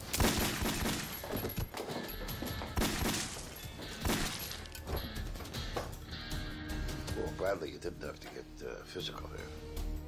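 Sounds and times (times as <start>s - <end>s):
dramatic film score music: 1.0s - 10.0s.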